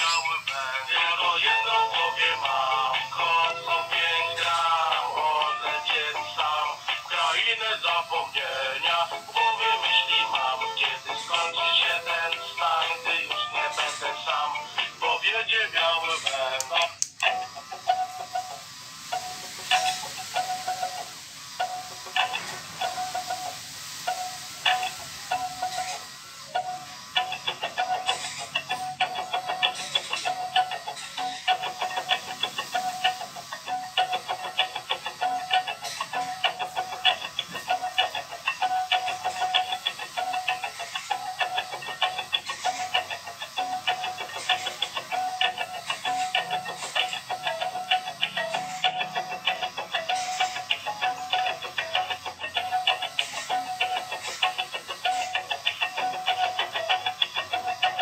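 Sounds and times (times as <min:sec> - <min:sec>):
electronic song from toy speaker: 0:00.0 - 0:58.0.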